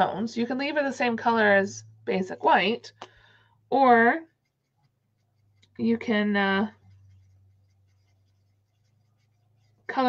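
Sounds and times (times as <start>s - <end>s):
low steady hum: 0.0s - 10.0s
marker scratching on cardstock: 4.2s - 5.8s, 6.6s - 10.0s.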